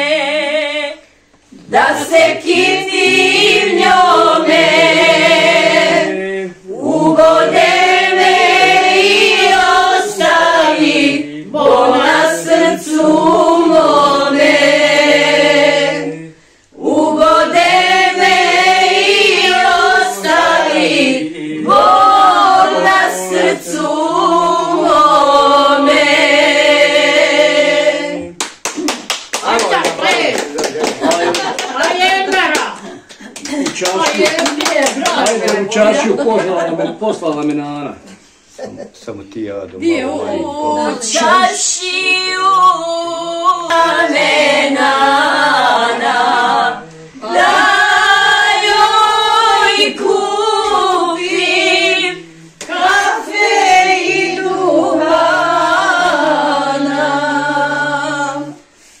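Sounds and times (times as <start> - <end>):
women singing together: 0.0 - 28.4, 29.4 - 36.9, 39.8 - 59.0
clapping: 28.4 - 35.6
lively talk: 29.4 - 42.8.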